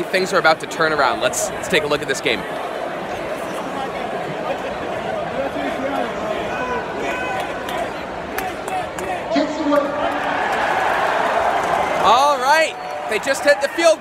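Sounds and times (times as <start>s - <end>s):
stadium crowd chattering and shouting: 0.0s - 14.0s.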